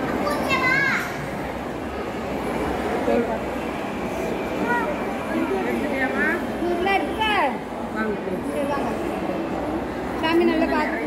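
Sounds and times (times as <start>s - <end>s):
people talking: 2.3s - 11.0s.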